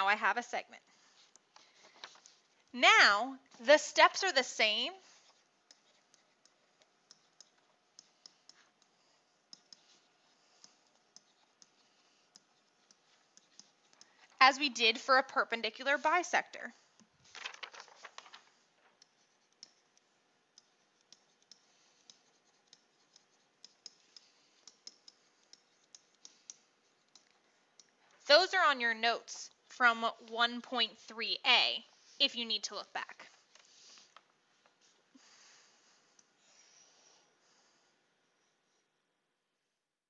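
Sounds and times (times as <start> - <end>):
stylus tapping tablet screen: 5.1 - 17.1, 18.9 - 28.5.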